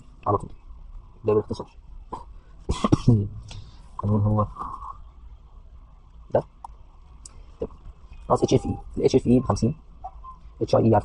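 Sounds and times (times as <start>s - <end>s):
throat clearing: 2.1s - 3.6s
person coughing: 2.7s - 3.3s.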